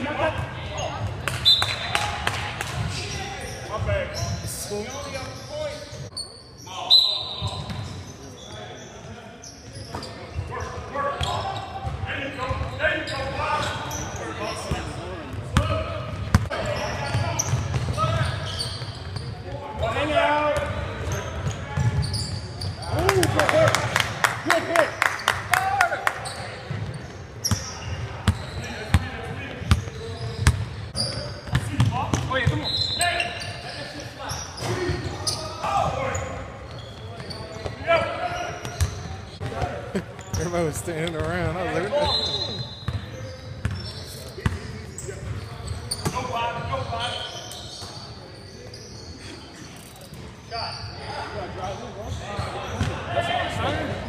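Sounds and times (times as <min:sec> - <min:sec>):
players shouting and chatter: 0:00.0 - 0:54.0.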